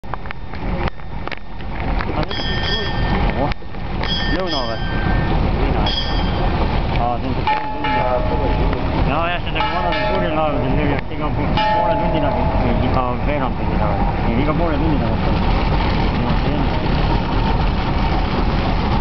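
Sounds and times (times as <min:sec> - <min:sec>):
steady low rumble: 0:00.0 - 0:19.0
voices calling out: 0:02.1 - 0:14.3.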